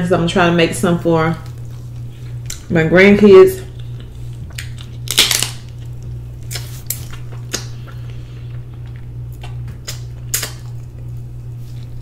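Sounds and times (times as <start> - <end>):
chewing and sucking smacks: 1.4 - 2.7, 3.7 - 5.0, 5.7 - 12.0
wet slurp: 6.4 - 8.2.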